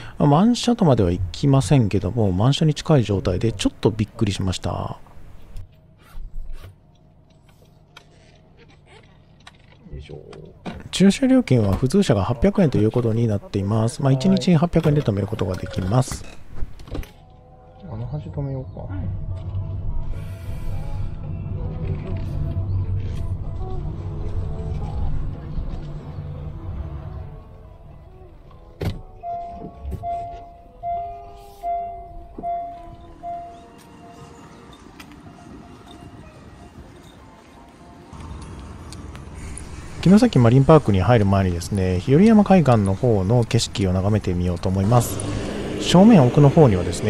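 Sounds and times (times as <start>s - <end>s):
background music: 17.0s - 40.2s, 43.7s - 47.0s
car engine rumble: 38.1s - 47.0s.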